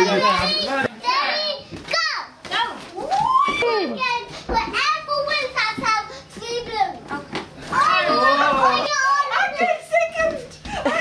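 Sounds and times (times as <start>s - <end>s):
children playing excitedly: 0.0s - 11.0s.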